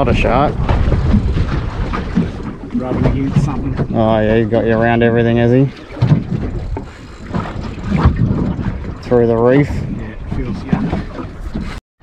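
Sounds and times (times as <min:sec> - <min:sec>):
water noise: 0:00.0 - 0:11.8
wind buffeting microphone: 0:00.0 - 0:11.8.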